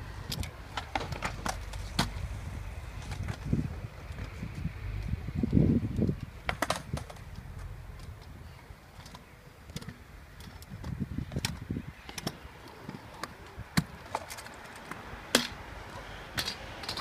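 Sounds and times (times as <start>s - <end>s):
scooter rolling on concrete: 0.0s - 17.0s.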